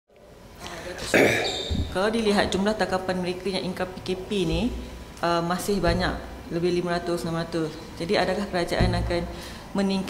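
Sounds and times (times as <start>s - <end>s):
person speaking: 0.6s - 10.0s.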